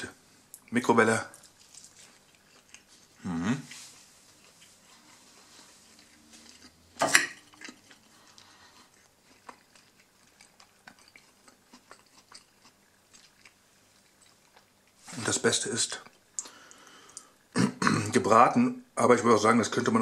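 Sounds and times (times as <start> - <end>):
fork clinking on ceramic plate: 7.0 - 7.4.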